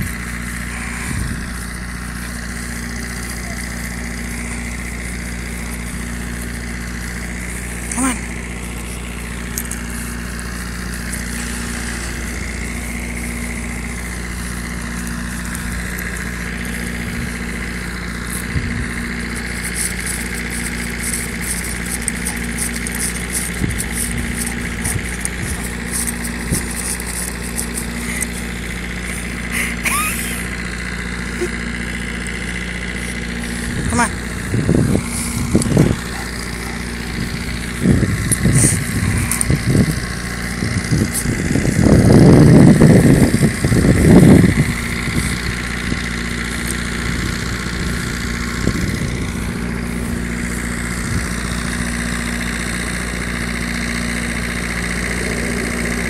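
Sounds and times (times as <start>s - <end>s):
steady mechanical hum: 0.0s - 56.0s.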